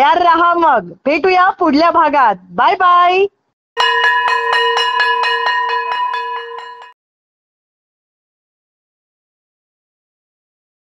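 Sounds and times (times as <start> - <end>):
bell rung rapidly: 3.8 - 7.0.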